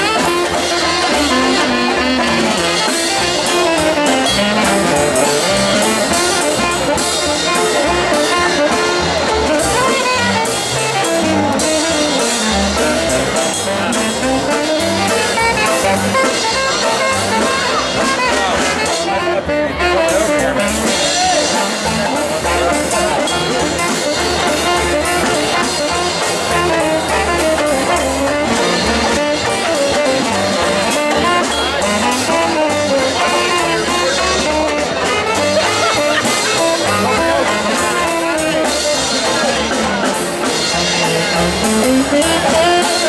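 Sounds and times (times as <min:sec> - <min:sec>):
crowd chatter: 0:00.0 - 0:43.0
saxophones playing a tune: 0:00.0 - 0:43.0.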